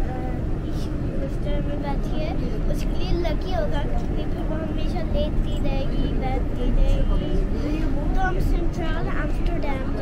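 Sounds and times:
girl talking: 0.0s - 10.0s
tram rumbling: 0.0s - 10.0s.

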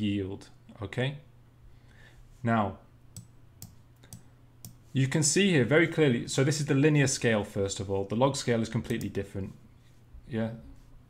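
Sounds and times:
faint low hum: 0.0s - 11.0s
computer mouse clicking: 3.2s - 4.8s, 8.8s - 9.1s.

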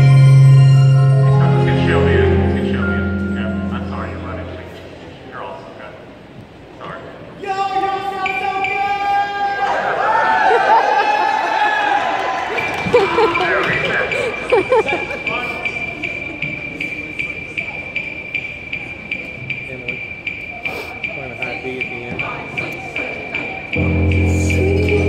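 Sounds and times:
students calling and talking: 1.1s - 25.0s
metronome ticking: 14.4s - 25.0s.

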